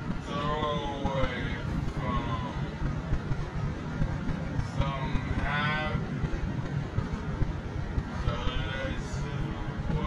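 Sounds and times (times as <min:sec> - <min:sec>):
car driving rumble: 0:00.0 - 0:10.0.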